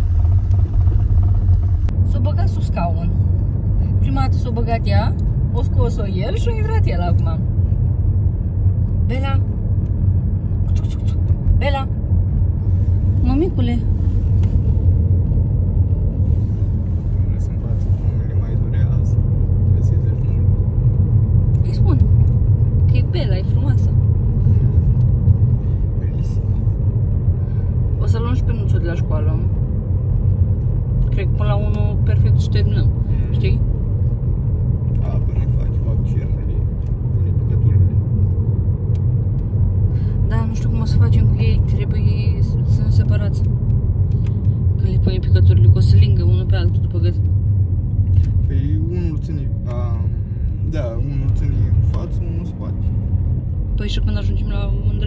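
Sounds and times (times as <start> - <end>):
car engine and tyres rumbling: 0.0 - 55.0.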